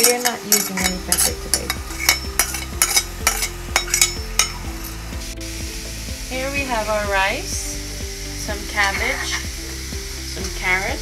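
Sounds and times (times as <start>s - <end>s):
metal spoon tapping and scraping: 0.0s - 4.6s
frying sizzle: 0.0s - 11.0s.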